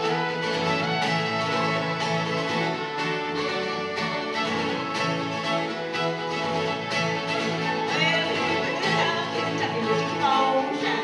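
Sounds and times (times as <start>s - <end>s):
fiddle: 0.0s - 11.0s
guitar: 0.0s - 11.0s.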